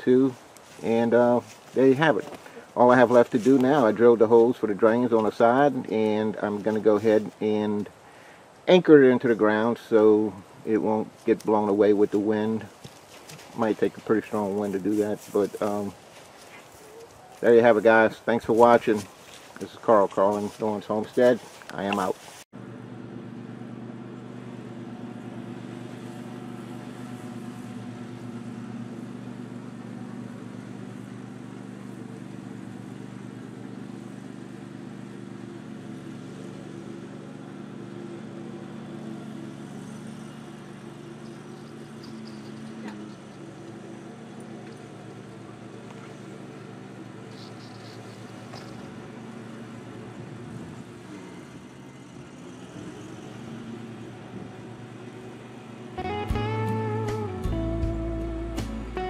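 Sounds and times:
riding mower engine running: 0.0s - 59.0s.

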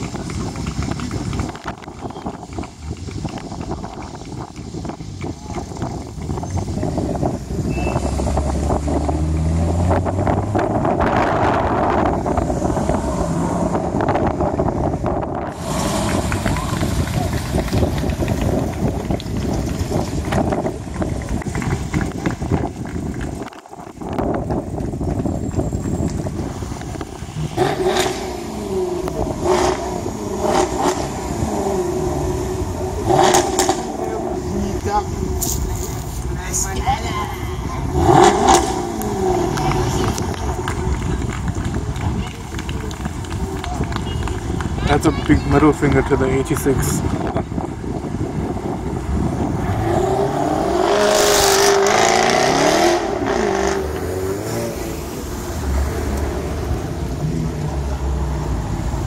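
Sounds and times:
car engines running: 0.0s - 59.0s
crowd voices: 0.0s - 59.0s.

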